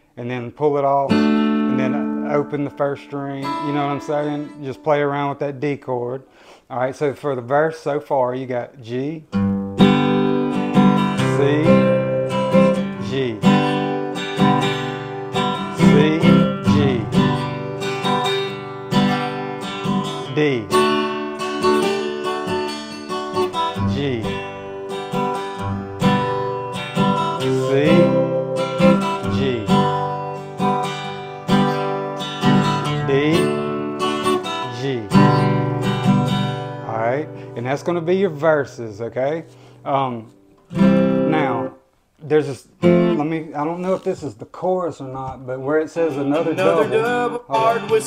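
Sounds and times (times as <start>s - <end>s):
acoustic guitar strumming: 0.7s - 6.4s, 9.3s - 41.9s, 42.5s - 43.9s, 45.8s - 48.0s.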